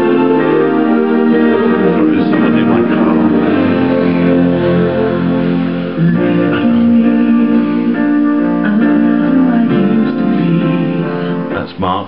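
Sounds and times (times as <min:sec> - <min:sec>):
pop song with guitar: 0:00.0 - 0:12.0.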